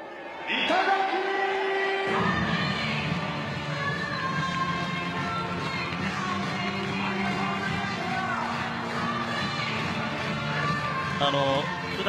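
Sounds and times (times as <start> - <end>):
stadium crowd cheering: 0.0 - 11.5
music playing: 0.0 - 12.0.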